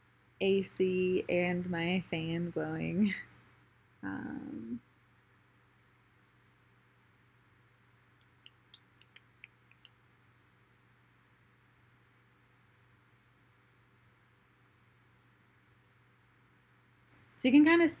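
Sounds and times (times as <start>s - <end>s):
air conditioner and fan hum: 0.0s - 7.8s
faint clicks: 7.8s - 10.5s.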